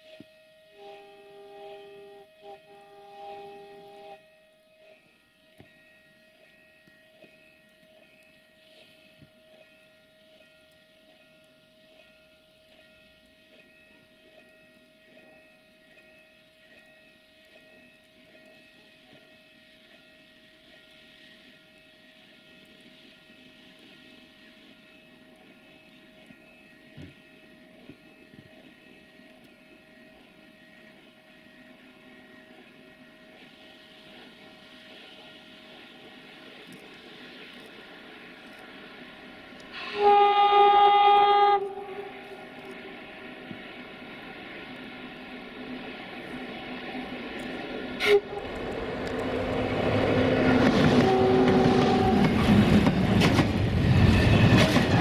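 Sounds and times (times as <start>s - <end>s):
train horn: 0.0s - 4.8s, 39.7s - 42.6s, 48.0s - 52.7s
distant train rumble: 0.0s - 55.0s.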